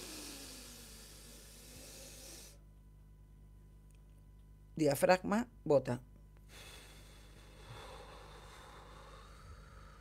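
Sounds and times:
woman exhaling slowly: 0.0s - 2.6s, 6.5s - 10.0s.

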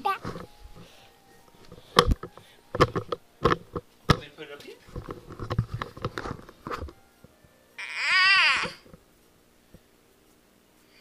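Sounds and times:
toddler squealing: 7.8s - 8.8s.

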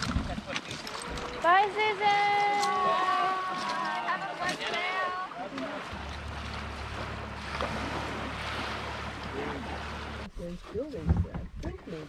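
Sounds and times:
wind rumble on microphone: 0.0s - 1.3s, 5.9s - 12.0s
small waves lapping: 0.0s - 12.0s.

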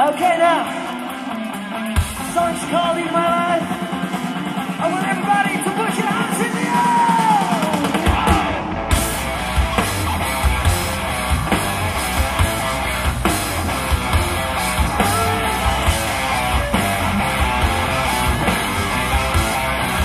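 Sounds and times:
drums: 0.0s - 20.0s
electric guitar: 0.0s - 20.0s
bass guitar: 7.3s - 20.0s.

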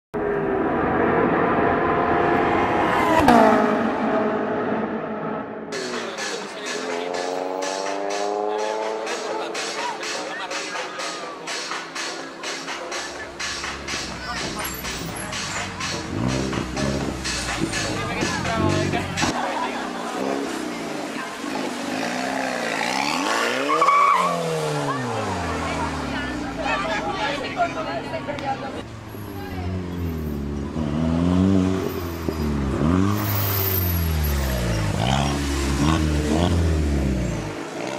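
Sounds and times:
car engine revving: 0.2s - 37.9s
tyre squeal: 23.6s - 24.5s, 32.0s - 35.2s.

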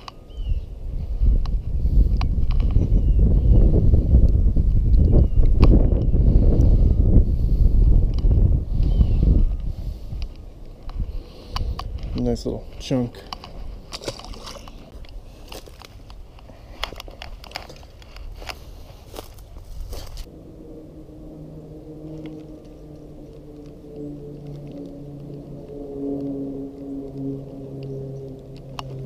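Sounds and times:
fishing tackle clicks and clatter: 13.3s - 18.6s.

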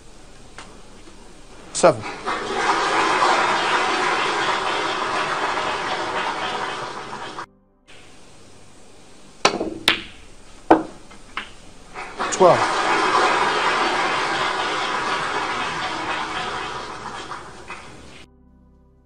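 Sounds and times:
audience applause: 1.7s - 7.5s, 11.9s - 18.3s
cue tip striking ball: 9.4s - 18.2s
snooker balls clicking together: 9.4s - 18.2s.

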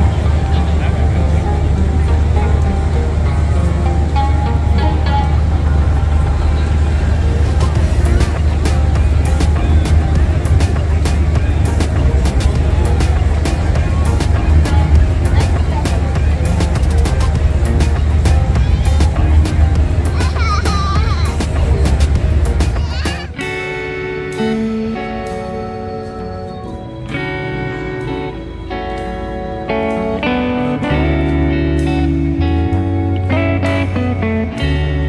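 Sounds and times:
pop music with heavy bass: 0.0s - 35.0s.

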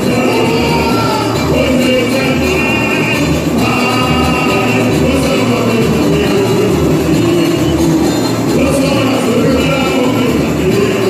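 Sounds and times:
singers over a band: 0.0s - 11.0s
steady low beat: 0.0s - 11.0s.

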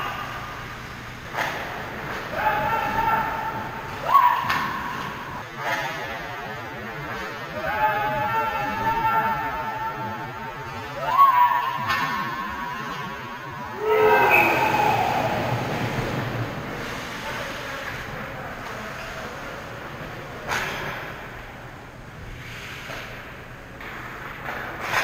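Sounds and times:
players shouting in ice rink: 1.4s - 6.0s, 7.1s - 18.1s.

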